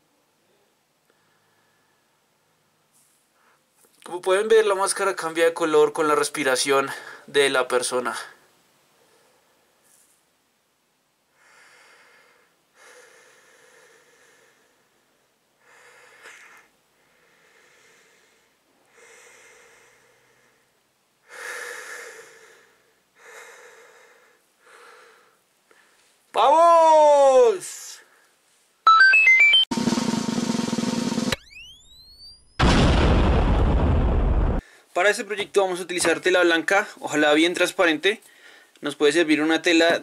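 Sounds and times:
tones gliding upward: 28.9 - 29.7, 31.3 - 32.6
loud rushing blast: 32.6 - 34.6.

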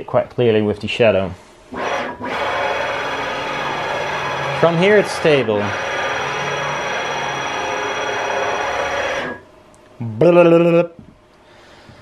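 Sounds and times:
motor spinning ball screw whine: 1.8 - 9.4.

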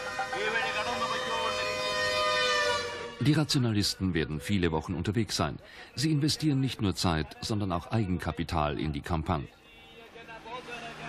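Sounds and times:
loudspeaker siren-like tone: 0.0 - 4.8.

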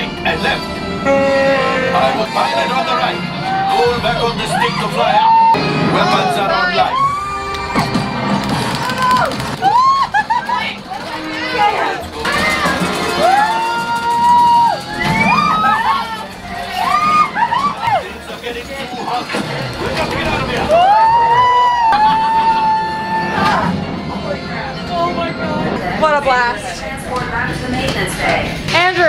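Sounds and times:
amusement ride background music: 0.0 - 29.0
riders whooping and cheering: 4.5 - 5.6, 6.8 - 10.8, 12.2 - 18.2, 20.5 - 23.8.

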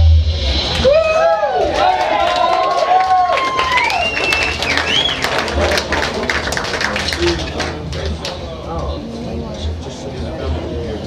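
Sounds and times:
audience clapping and cheering: 0.7 - 9.0.

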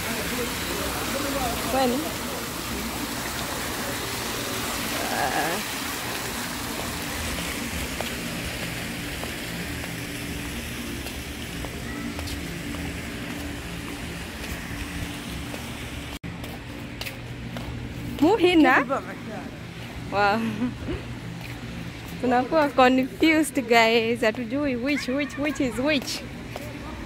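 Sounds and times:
fountain water splashing: 0.0 - 16.2, 21.4 - 27.0.

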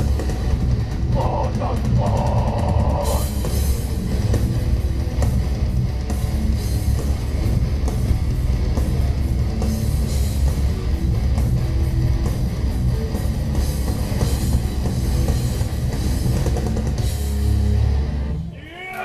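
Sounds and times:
fast dense drumming: 0.0 - 17.4
distorted electric guitars: 0.0 - 19.0.

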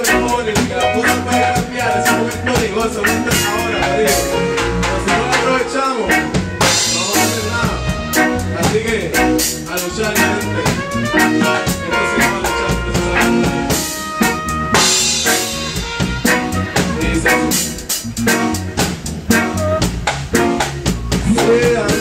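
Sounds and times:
drum kit rimshots: 0.0 - 22.0
reggae band playing: 0.0 - 22.0.

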